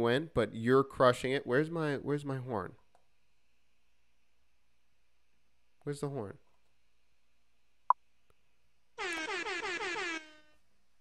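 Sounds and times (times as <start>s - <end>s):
wavering horn blast: 9.0s - 10.6s.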